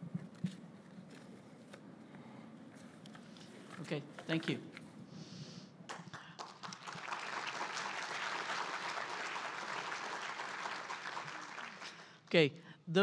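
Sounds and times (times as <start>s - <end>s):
audience applauding: 5.9s - 12.2s.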